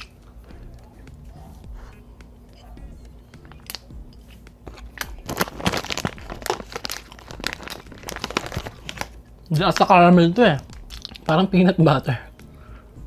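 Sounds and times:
plastic wrapper crinkling: 0:04.7 - 0:11.3
chewing: 0:10.7 - 0:11.3.

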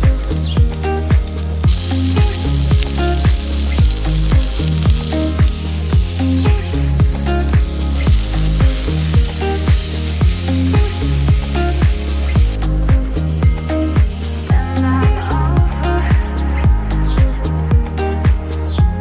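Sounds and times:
background music with a beat: 0:00.0 - 0:19.0
meat sizzling in a skillet: 0:00.4 - 0:14.0.

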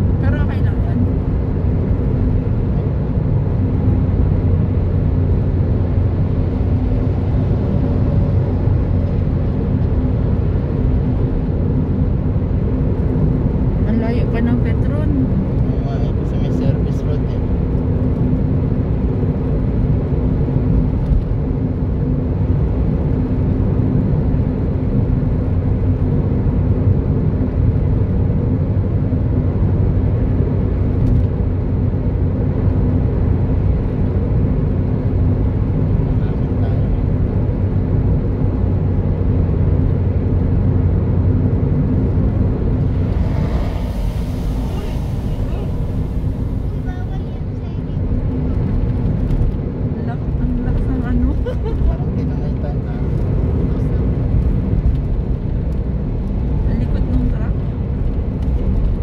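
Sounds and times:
car road and engine drone: 0:00.0 - 0:59.0.

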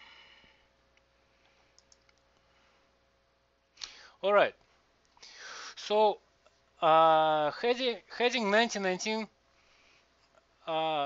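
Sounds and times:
faint short clicks: 0:01.7 - 0:02.2.

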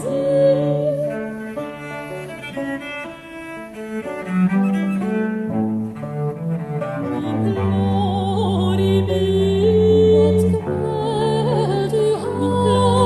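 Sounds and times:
baroque chamber music strings: 0:00.0 - 0:13.0
cello bass line: 0:00.0 - 0:13.0.

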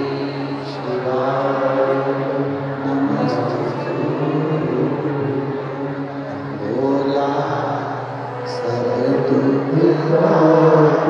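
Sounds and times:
man chanting into microphone: 0:00.0 - 0:05.6, 0:06.3 - 0:11.0
steady low drone: 0:00.0 - 0:11.0.

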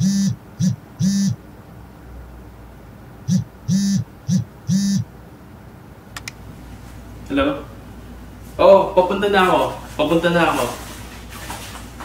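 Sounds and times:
mobile phone vibrating: 0:00.0 - 0:01.4, 0:03.2 - 0:05.1.

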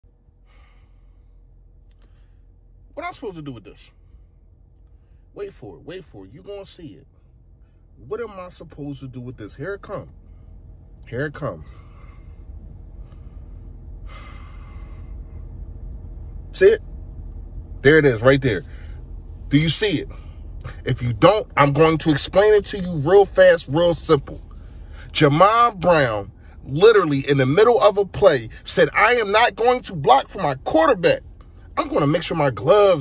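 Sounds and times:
low steady hum: 0:00.0 - 0:33.0.

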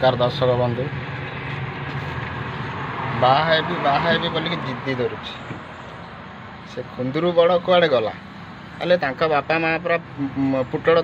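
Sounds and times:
road noise rushing: 0:00.0 - 0:11.0.

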